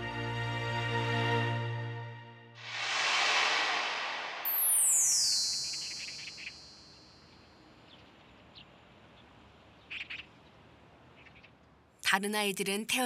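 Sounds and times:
high falling shimmer: 0:02.6 - 0:07.2
bird chirps: 0:04.5 - 0:08.7.

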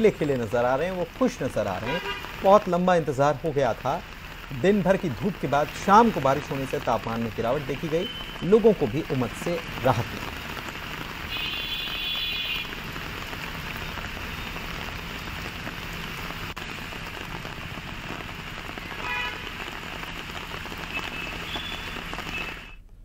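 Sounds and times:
heavy rain falling: 0:00.0 - 0:22.8.

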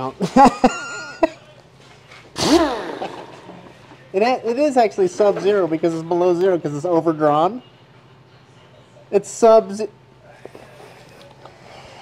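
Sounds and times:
man's short vocal sound: 0:02.4 - 0:03.6.

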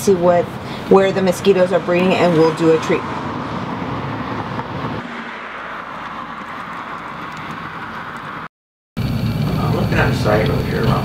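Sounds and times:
outdoor traffic rumble: 0:00.0 - 0:11.0
faint high whine: 0:09.0 - 0:11.0.

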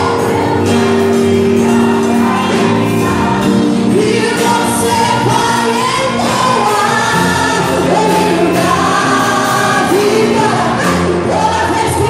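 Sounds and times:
band with drums and keyboard: 0:00.0 - 0:12.0
woman singing into microphone: 0:00.0 - 0:12.0.

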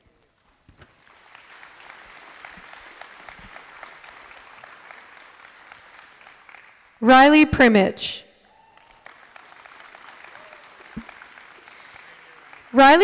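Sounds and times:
faint scattered applause: 0:00.0 - 0:07.1, 0:08.3 - 0:13.0.

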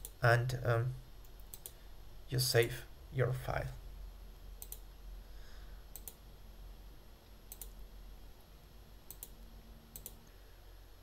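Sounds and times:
faint low hum: 0:00.0 - 0:11.0
computer mouse clicks: 0:01.2 - 0:01.8, 0:04.6 - 0:04.9, 0:05.9 - 0:06.2, 0:07.5 - 0:07.8, 0:09.1 - 0:10.3.

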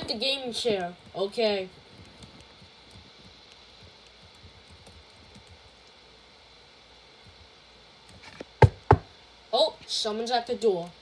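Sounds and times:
room hiss: 0:00.0 - 0:11.0
knocking on door: 0:08.6 - 0:09.1.

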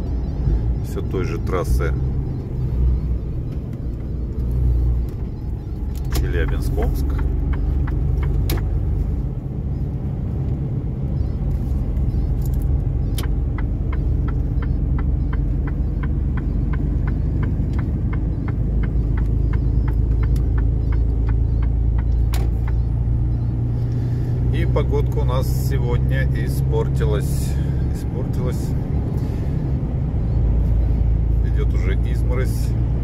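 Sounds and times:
truck engine droning: 0:00.0 - 0:33.0.

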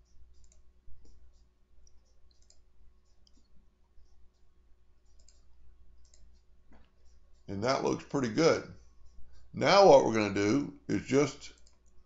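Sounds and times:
low steady hum: 0:00.0 - 0:12.0
computer mouse clicks: 0:00.1 - 0:07.5, 0:11.5 - 0:12.0.

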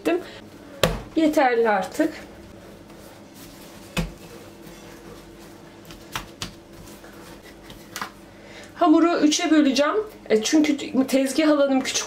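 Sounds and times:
dough thumping on countertop: 0:00.8 - 0:01.2, 0:03.9 - 0:04.2, 0:05.8 - 0:06.8.

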